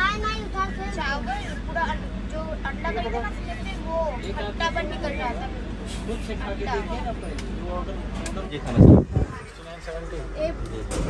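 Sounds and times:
people talking: 0.0 - 11.0
train rumble: 0.0 - 11.0.

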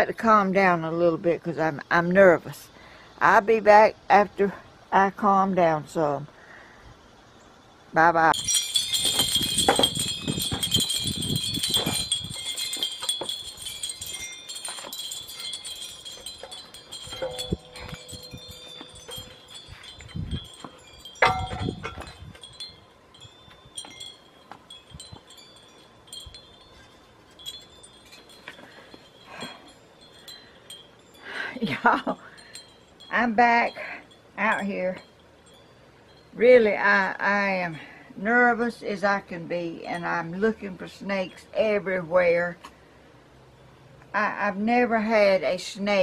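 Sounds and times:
wind chimes ringing: 8.3 - 38.0
light clinks: 8.4 - 36.4.

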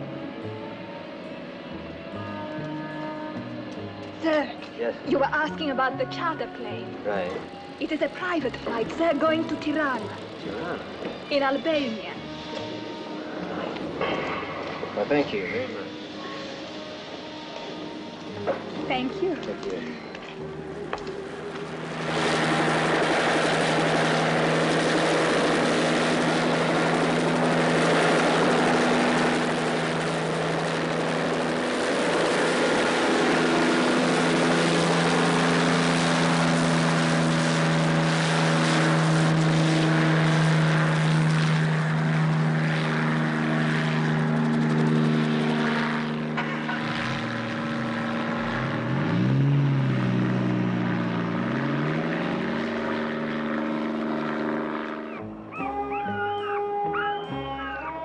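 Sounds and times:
helicopter engine and rotor: 0.0 - 48.9, 50.8 - 57.8.

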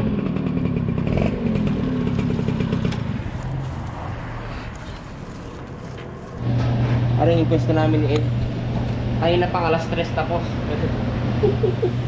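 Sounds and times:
small motorbike engine slowing: 0.0 - 6.7.

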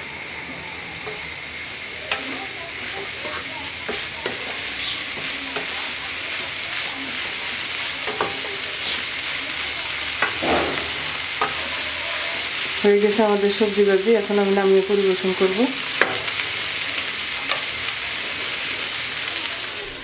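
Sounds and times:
vegetables sizzling in a pan: 0.0 - 20.0
spatula scraping a pan: 1.0 - 13.2.

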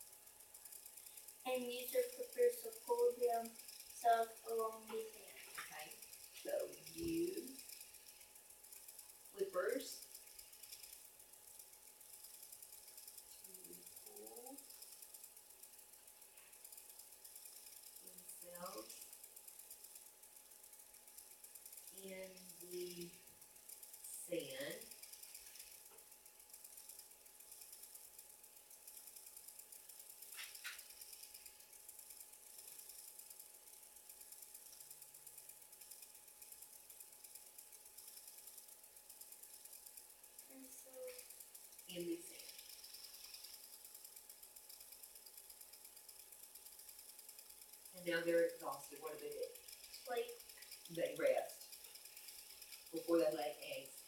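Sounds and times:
faint steady hum: 0.0 - 54.0
fast even ticking: 0.0 - 54.0.

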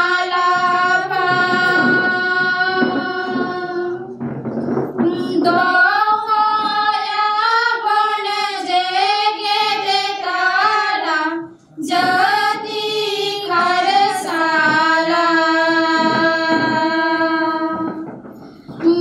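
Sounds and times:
young women singing in unison: 0.0 - 4.3, 5.0 - 18.1.

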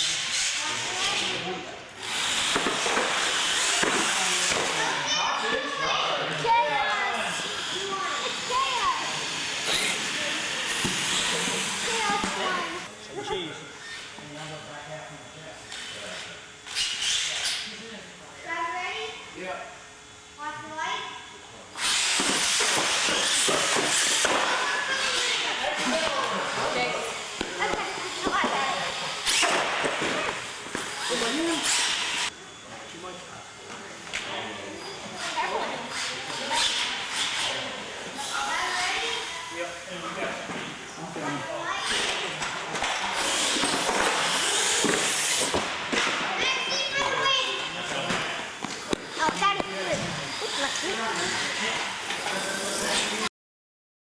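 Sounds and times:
toy truck motors whirring: 0.0 - 14.1, 15.7 - 17.7, 21.8 - 32.4, 41.6 - 45.6, 48.5 - 53.3
people talking in a hall: 0.0 - 53.3.

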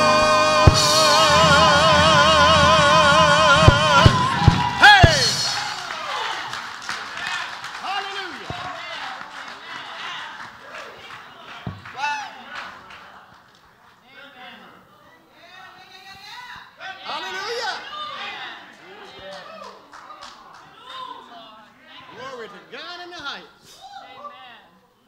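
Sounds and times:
rising vocal cry: 0.0 - 6.1
gospel choir singing: 0.0 - 6.3
sharp musical hits: 0.5 - 5.8.

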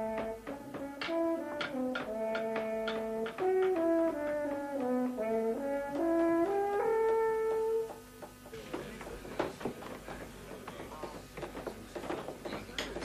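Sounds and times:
brass sustained chords: 0.0 - 7.9.

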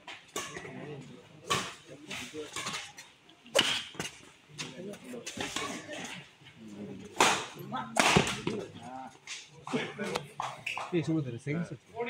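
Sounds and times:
racquets striking shuttlecock: 1.4 - 5.9, 7.1 - 8.7.

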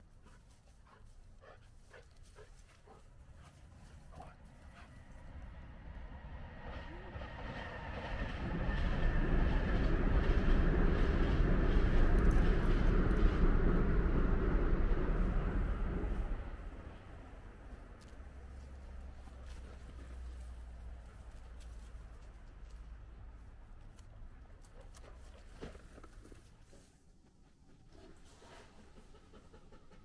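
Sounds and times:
train rumbling past: 1.9 - 25.4.

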